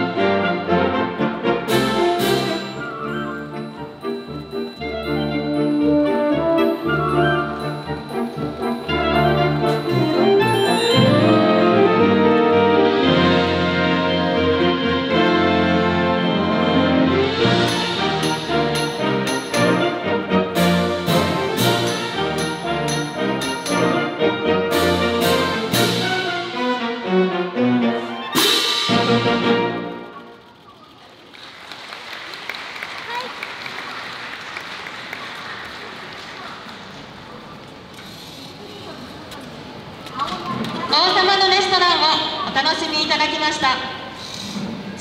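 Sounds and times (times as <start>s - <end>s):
brass band playing: 0.0s - 30.4s
cymbal crash: 28.4s - 29.8s
audience applause: 31.2s - 37.5s
woman speaking into a microphone: 40.2s - 44.0s.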